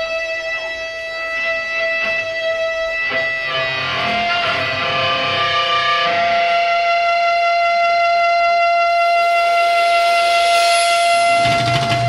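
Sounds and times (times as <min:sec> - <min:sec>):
electric guitar sustained chord: 0:00.0 - 0:12.0.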